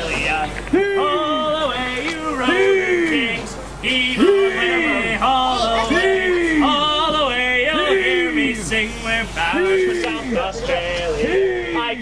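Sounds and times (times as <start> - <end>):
crew chanting heave: 0.0 - 12.0.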